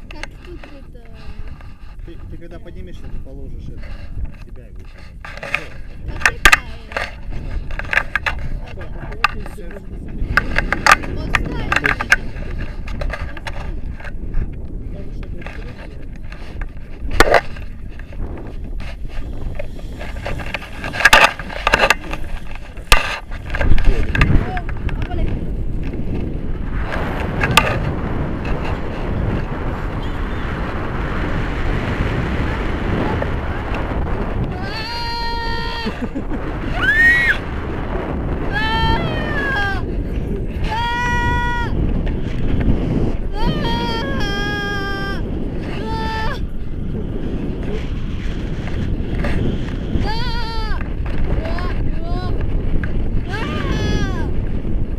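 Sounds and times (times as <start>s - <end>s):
wind rumbling on microphone: 0.0s - 54.9s
handling knocks and clicks: 19.6s - 25.3s.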